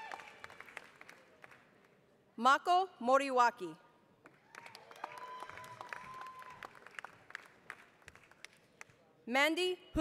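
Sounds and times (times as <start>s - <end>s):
audience applause: 0.0s - 1.6s, 4.5s - 8.5s.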